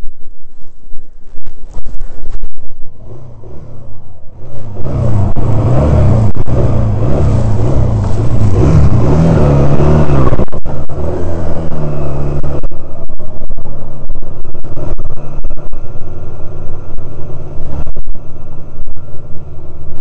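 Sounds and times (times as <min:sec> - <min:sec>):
motorcycle engine revving: 0:02.7 - 0:20.0.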